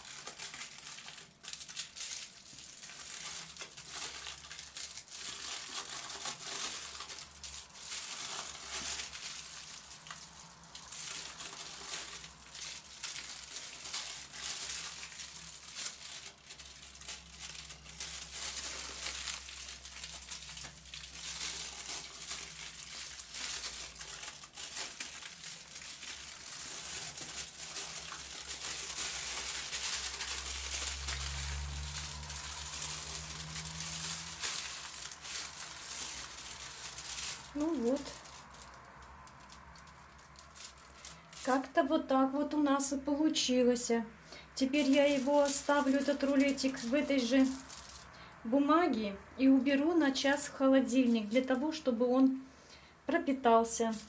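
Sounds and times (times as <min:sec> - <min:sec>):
aluminium foil crinkling: 0:00.0 - 0:43.5, 0:44.3 - 0:48.4, 0:49.4 - 0:52.4, 0:53.1 - 0:54.0.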